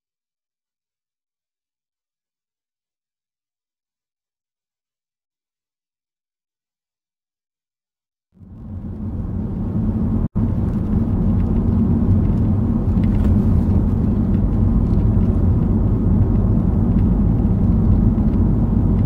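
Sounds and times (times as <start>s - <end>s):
car engine and road rumble: 8.4s - 19.0s.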